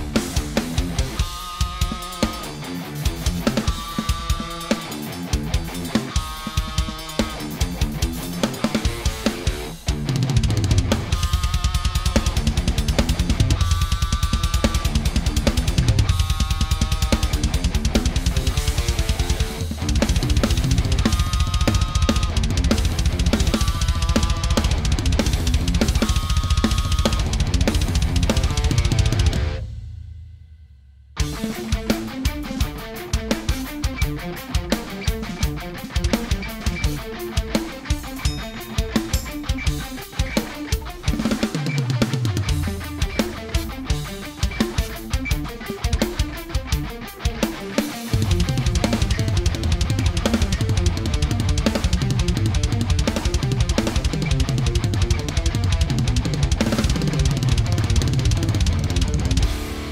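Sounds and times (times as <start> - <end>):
guitar backing track: 0.0 - 29.8, 31.2 - 59.9
electronic drum kit playing: 0.0 - 30.5, 31.2 - 59.9
fast bass drum strokes: 0.0 - 30.5, 31.2 - 59.9.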